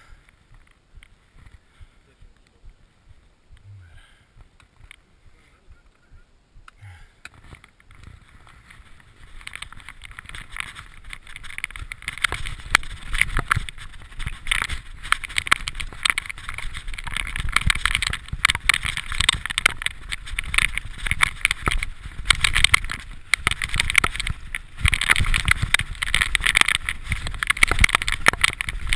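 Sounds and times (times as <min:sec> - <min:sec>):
bike knocking and rattling: 0:07.3 - 0:28.9
tyres crunching over dirt and leaves: 0:07.3 - 0:28.9.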